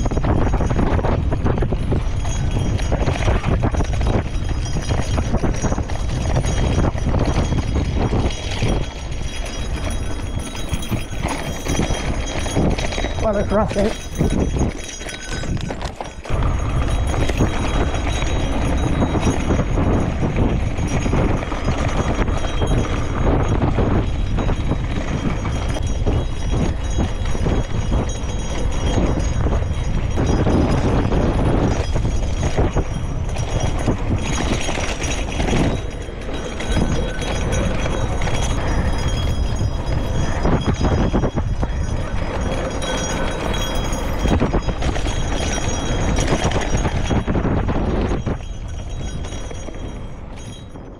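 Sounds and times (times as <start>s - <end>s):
bike tyre noise: 0.0s - 50.6s
bike rattling over bumps: 0.0s - 50.9s
wind on microphone: 0.0s - 50.9s.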